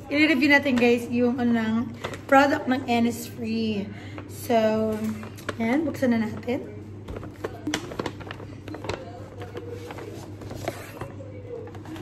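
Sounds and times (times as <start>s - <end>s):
paper bag rustling and crinkling: 4.8s - 12.0s.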